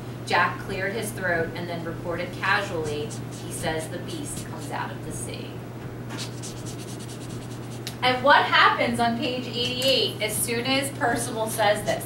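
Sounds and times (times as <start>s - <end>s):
steady low hum: 0.0s - 12.0s
pen writing on paper: 2.5s - 4.7s, 6.2s - 7.8s.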